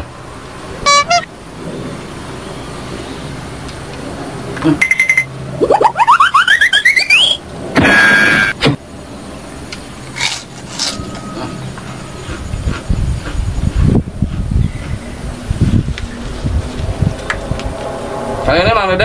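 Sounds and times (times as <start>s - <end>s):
rising whistle-like sweeps: 5.1s - 8.6s, 14.6s - 19.0s
loud noisy burst: 6.4s - 8.7s
chewing crunches: 10.1s - 14.4s.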